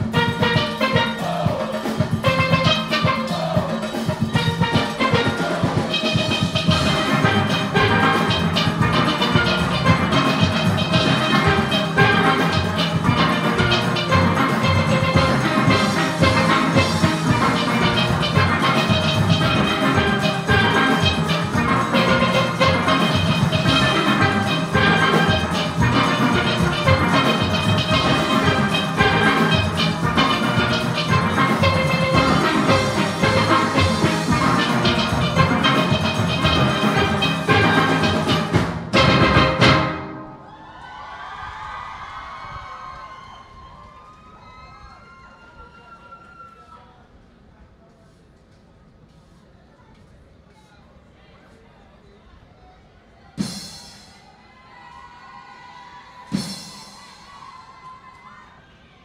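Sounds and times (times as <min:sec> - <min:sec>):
driving percussion beat: 0:00.0 - 0:40.3, 0:56.3 - 0:57.1
steelpans playing fast notes: 0:00.0 - 0:40.5.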